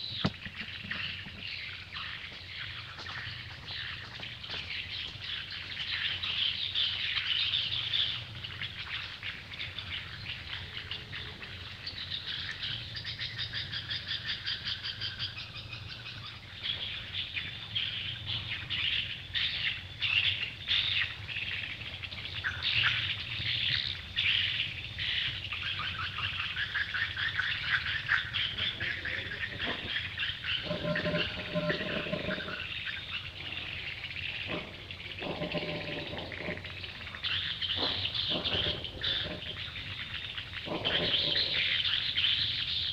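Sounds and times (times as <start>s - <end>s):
birds chirping and twittering: 0.0s - 42.9s.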